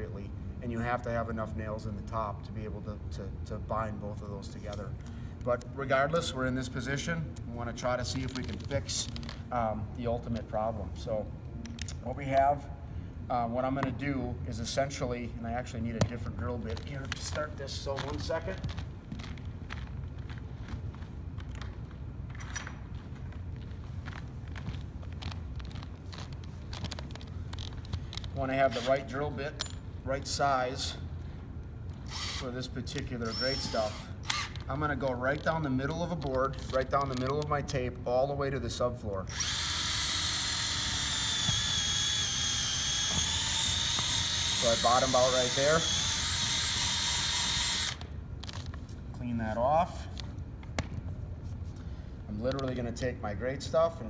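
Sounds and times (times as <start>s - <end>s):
steady low hum: 0.0s - 54.0s
footsteps: 16.0s - 28.9s
cordless drill whine: 32.0s - 32.6s, 33.2s - 34.6s, 39.3s - 48.1s.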